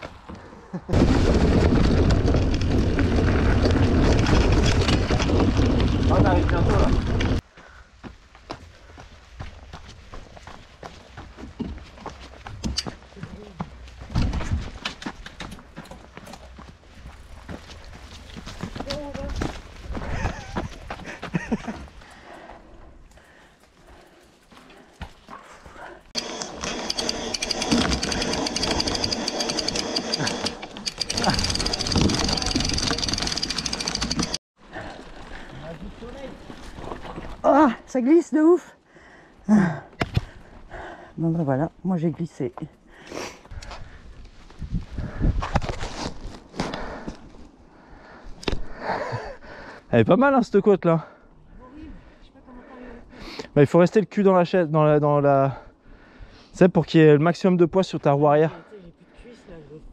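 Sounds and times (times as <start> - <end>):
tyres knocking over roots and rocks: 1.0 - 7.4, 26.7 - 34.4
person laughing: 20.0 - 21.9
wind rushing over microphone: 43.6 - 46.2.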